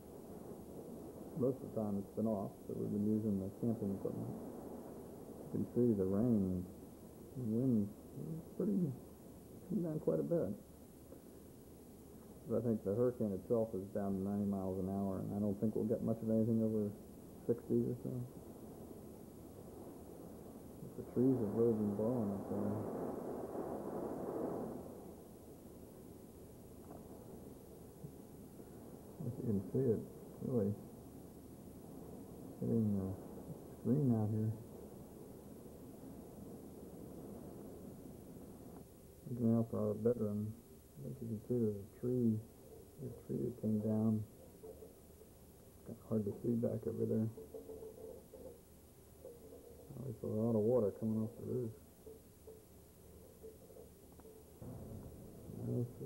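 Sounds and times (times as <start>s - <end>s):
heavy rain: 0.0s - 10.2s, 17.5s - 25.2s
gusting wind: 0.0s - 52.1s, 52.7s - 56.0s.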